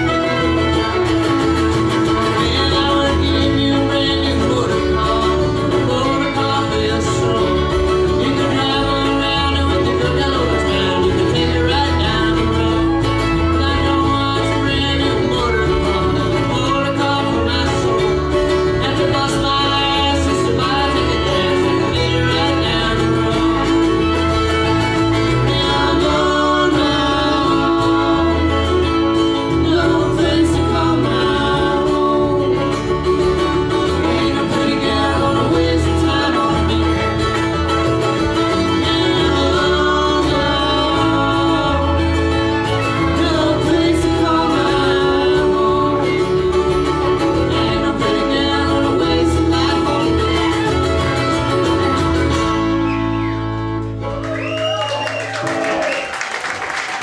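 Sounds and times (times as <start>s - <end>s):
acoustic guitars: 0.0s - 57.0s
banjo: 0.0s - 57.0s
fiddle: 0.0s - 57.0s
mandolin: 0.0s - 57.0s.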